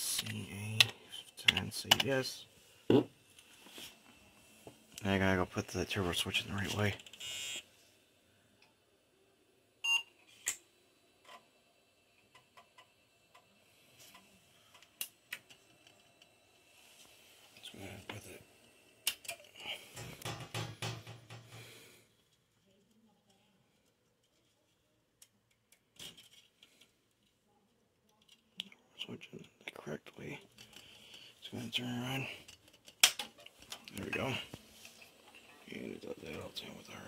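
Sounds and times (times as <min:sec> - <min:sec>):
hands clicking and knocking on computer: 0:20.0 - 0:21.6.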